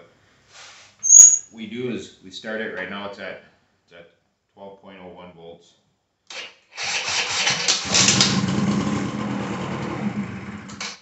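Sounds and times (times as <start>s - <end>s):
small two-stroke engine revving: 6.8s - 10.9s.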